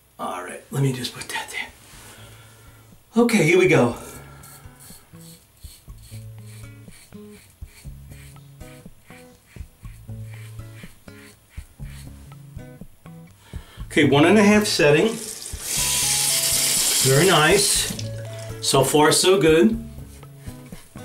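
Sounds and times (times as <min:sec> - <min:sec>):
razor scraping stubble: 0:04.4 - 0:12.8, 0:15.2 - 0:18.7, 0:20.0 - 0:21.0
background music with plucked guitar: 0:05.9 - 0:21.0.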